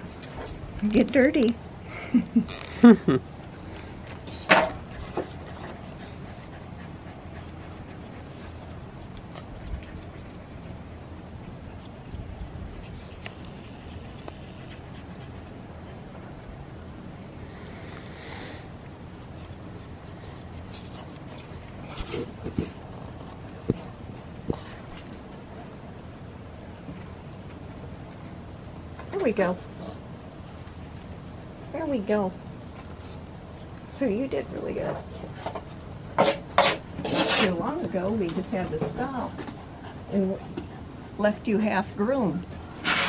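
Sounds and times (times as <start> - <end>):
low background noise: 0.0 - 43.0
dog panting: 4.8 - 16.8, 39.0 - 41.5
scissors snipping: 19.2 - 21.5.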